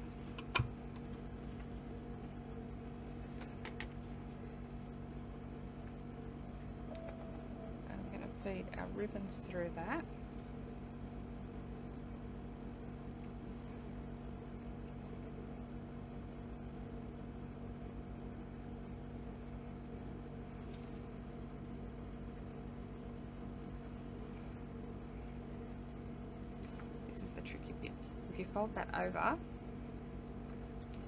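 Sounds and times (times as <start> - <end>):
low steady background hum: 0.0 - 31.0.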